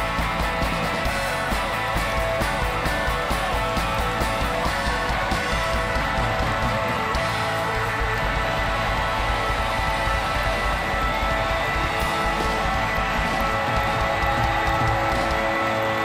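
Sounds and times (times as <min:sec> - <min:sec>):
crowd noise: 0:00.0 - 0:16.0
live rock band playing: 0:00.0 - 0:16.0.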